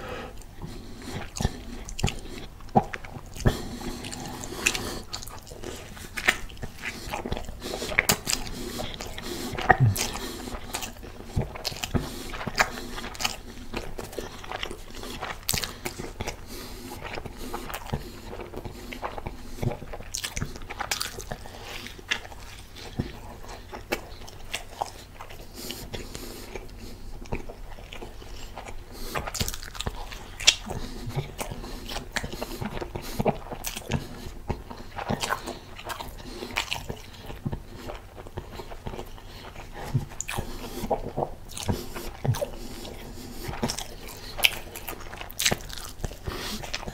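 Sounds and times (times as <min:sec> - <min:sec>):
chewing mouth clicks and smacks: 0:00.4 - 0:46.9.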